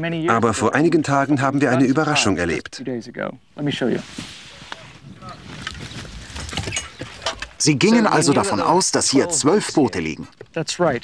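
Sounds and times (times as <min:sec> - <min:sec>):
faint distant voices: 0:01.4 - 0:11.0
wind noise on microphone: 0:04.1 - 0:07.6.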